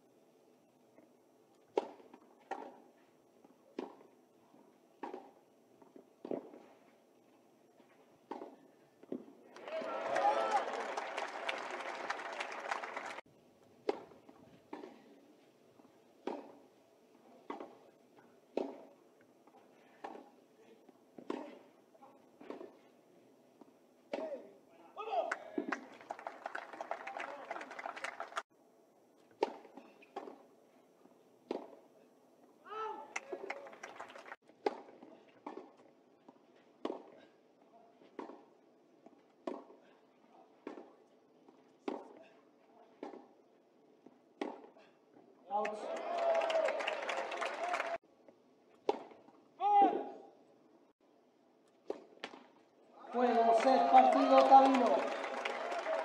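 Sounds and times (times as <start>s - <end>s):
rackets striking tennis ball: 1.6s - 2.9s, 3.7s - 4.2s, 5.0s - 6.7s, 8.2s - 9.3s, 13.8s - 15.1s, 16.2s - 16.7s, 18.5s - 20.4s, 29.3s - 30.5s, 31.4s - 31.8s, 34.5s - 37.3s, 38.0s - 39.8s, 40.6s - 42.3s, 42.9s - 43.4s, 44.4s - 44.8s, 48.8s - 49.4s, 51.7s - 52.6s
crowd noise: 9.5s - 13.2s, 25.5s - 28.4s, 45.6s - 48.0s, 53.0s - 56.0s
voice: 53.0s - 55.1s.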